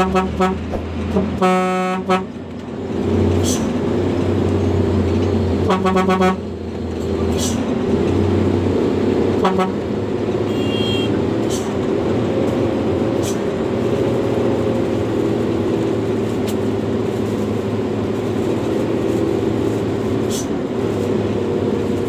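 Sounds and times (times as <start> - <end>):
truck clattering over bumps: 0.0 - 1.4
diesel truck engine running: 0.0 - 22.0.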